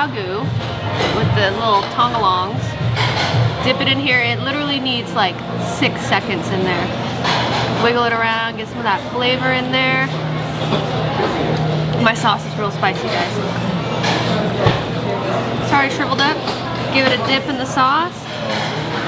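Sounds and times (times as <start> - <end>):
voices: 7.7 - 19.0.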